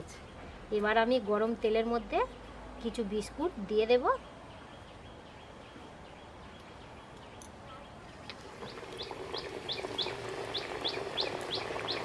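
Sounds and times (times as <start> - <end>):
bird chirping: 4.2 - 12.0.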